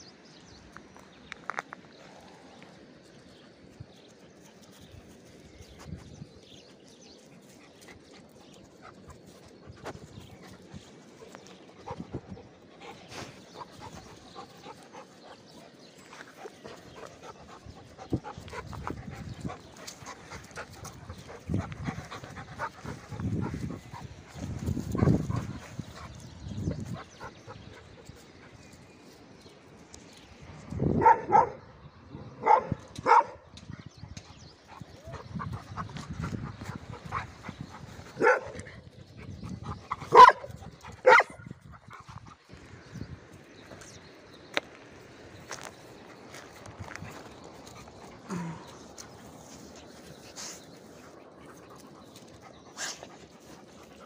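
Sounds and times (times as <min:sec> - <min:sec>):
dogs barking: 0:31.0 - 0:31.6, 0:32.4 - 0:33.4, 0:36.7 - 0:38.8, 0:39.9 - 0:41.5.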